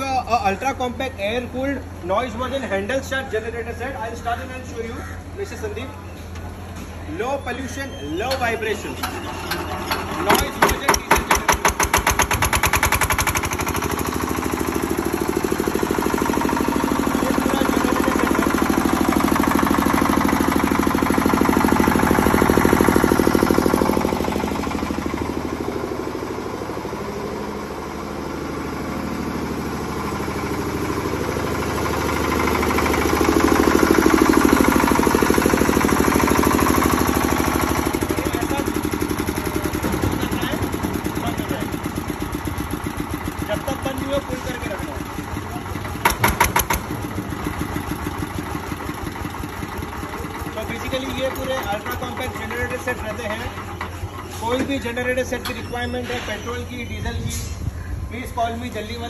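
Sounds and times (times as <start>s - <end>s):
diesel generator running: 0.0s - 59.0s.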